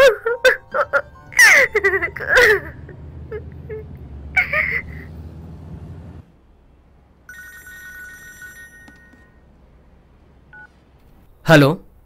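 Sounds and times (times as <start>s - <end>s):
phone ringing: 7.3s - 9.5s.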